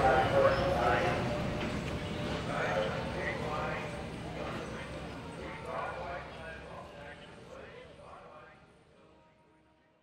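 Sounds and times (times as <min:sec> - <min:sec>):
indistinct voices: 0:00.0 - 0:08.5
crowd bustle: 0:00.0 - 0:09.2.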